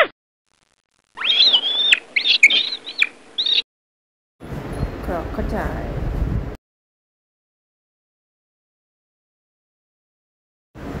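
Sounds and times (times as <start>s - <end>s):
short high-pitched animal calls: 1.2s - 3.6s.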